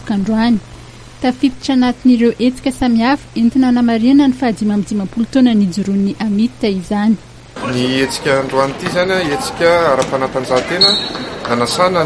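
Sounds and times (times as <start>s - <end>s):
man speaking: 7.6s - 12.0s
high steady whistle-like tone: 10.8s - 11.4s.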